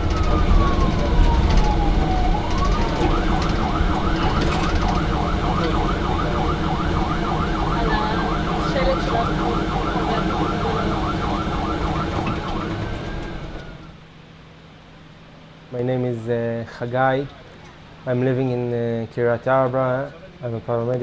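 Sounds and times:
ambulance siren warbling: 0.0s - 14.0s
engine and road rumble: 0.0s - 21.0s.

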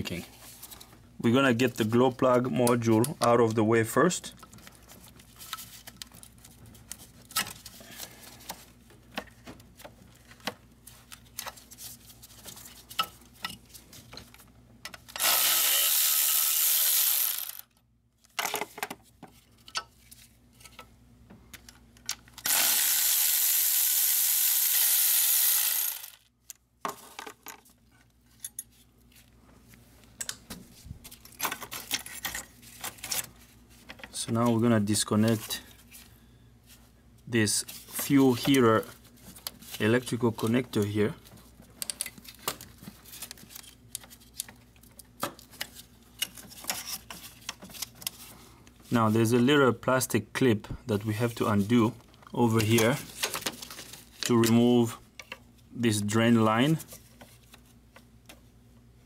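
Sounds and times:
cordless electric ratchet running: 15.2s - 17.7s, 22.4s - 26.2s
tools and metal parts clinking: 28.3s - 28.8s.

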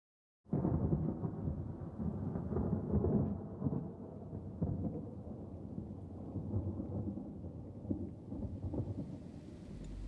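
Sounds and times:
rolling thunder: 0.5s - 10.0s.

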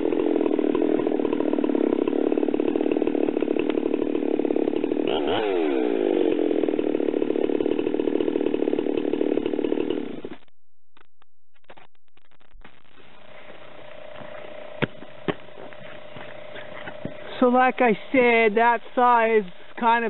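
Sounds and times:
chainsaw idling: 0.0s - 10.4s, 13.2s - 20.0s.

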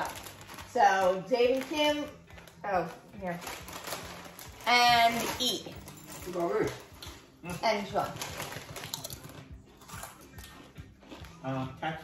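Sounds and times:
tortilla chips crunching: 0.0s - 2.6s, 3.4s - 5.0s, 6.7s - 11.6s.

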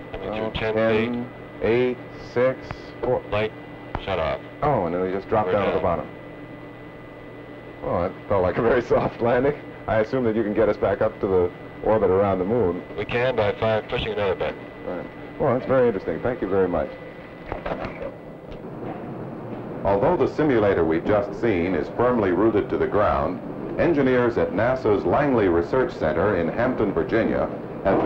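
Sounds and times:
low hum and hiss: 0.0s - 28.0s
man narrating: 0.2s - 6.1s, 7.8s - 17.0s, 19.9s - 28.0s.

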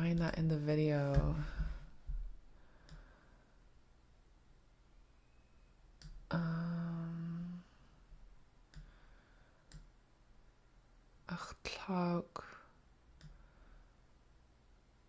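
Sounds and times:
person humming: 6.3s - 7.8s.

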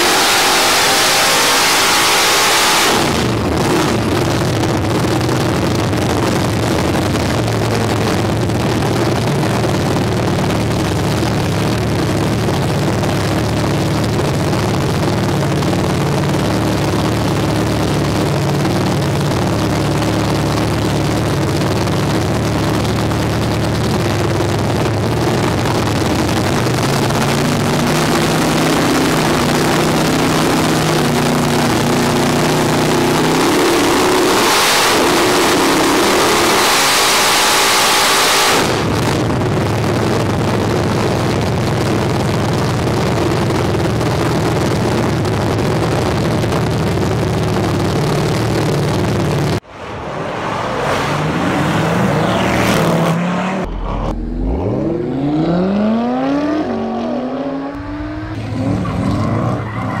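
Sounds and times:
car engine on dyno: 0.0s - 60.0s
other engines revving: 0.0s - 60.0s.

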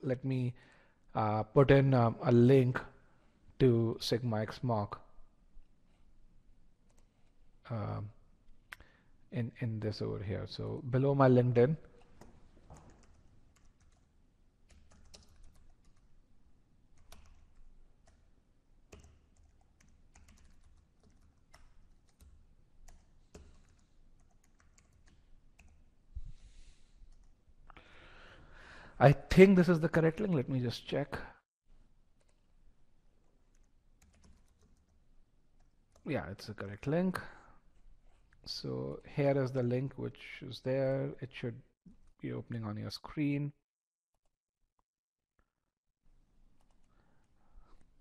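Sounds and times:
typing on computer keyboard: 12.0s - 16.1s, 17.0s - 18.3s, 18.9s - 25.8s, 33.5s - 35.0s.

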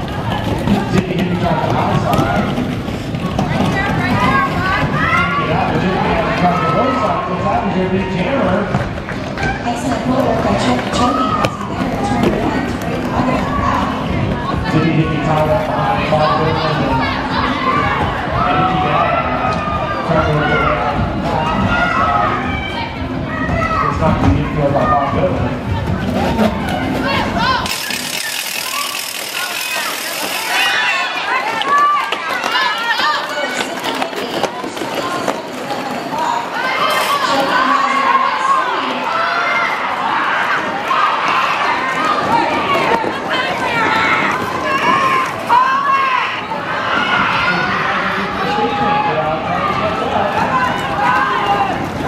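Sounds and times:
roller skate wheels rolling: 0.0s - 6.8s, 8.7s - 14.8s, 25.7s - 38.1s, 40.9s - 47.3s
people shouting and talking: 0.0s - 52.0s.

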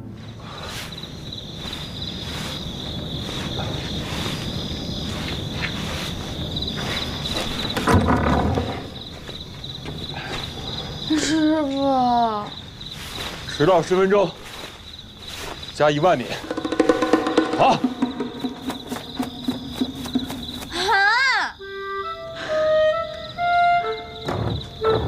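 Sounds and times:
crickets chirring: 0.0s - 25.0s
soft rustles: 0.6s - 7.8s, 12.9s - 16.5s.

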